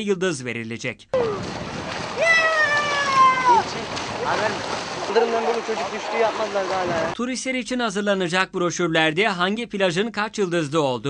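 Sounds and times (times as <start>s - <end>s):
beach background noise: 1.1s - 8.2s
high voice calling out: 1.2s - 1.5s, 2.2s - 3.8s.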